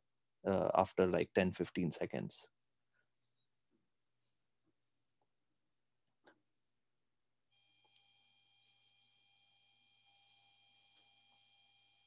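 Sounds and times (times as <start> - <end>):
faint high whine: 7.5 - 12.0.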